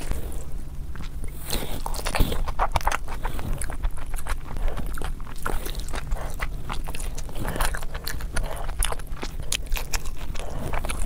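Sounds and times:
wet mouth chewing sounds: 0.0 - 11.0.

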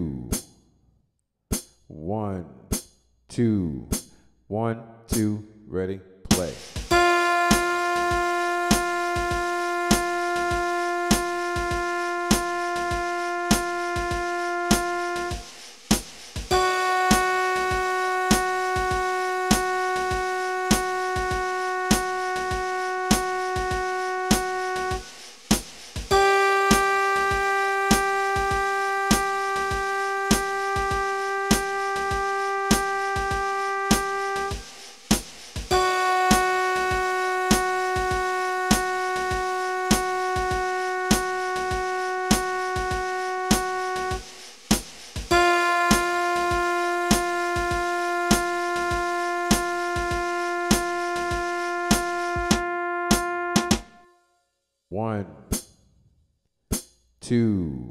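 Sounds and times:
synthesized keyboard long note: 6.9 - 15.4, 16.5 - 25.1, 26.1 - 34.6, 35.7 - 44.2, 45.3 - 53.8.

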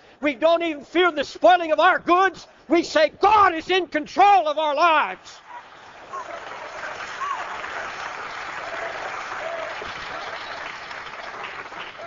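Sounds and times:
congregation applauding: 5.8 - 12.0.

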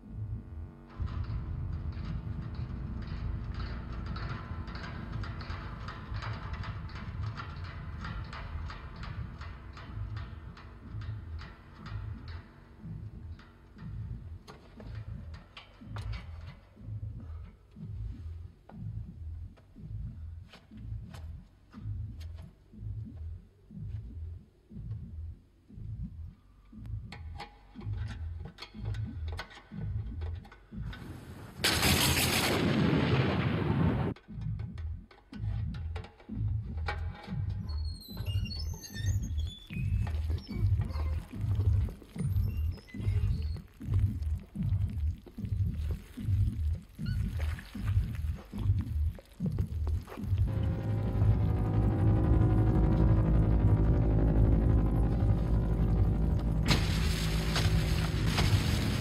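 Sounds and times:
low pulsing beat: 0.0 - 31.2, 34.1 - 59.0
sustained droning chord: 50.4 - 59.0.

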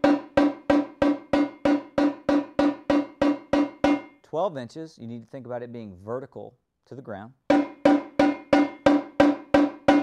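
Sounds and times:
tenor drum strokes: 0.0 - 4.2, 7.5 - 10.0.

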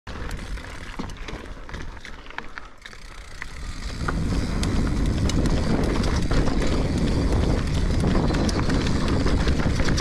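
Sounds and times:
bike rattles: 0.1 - 10.0
wind on microphone: 3.7 - 10.0.

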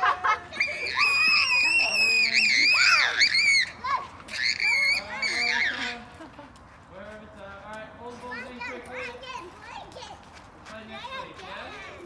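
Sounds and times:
children screaming: 0.0 - 6.1
children's voices: 3.0 - 5.9, 8.2 - 12.0.

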